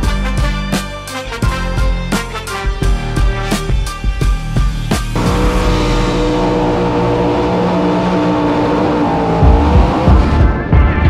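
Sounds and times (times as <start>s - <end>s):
music: 0.0s - 11.0s
racing car engine at high revs: 5.2s - 10.7s.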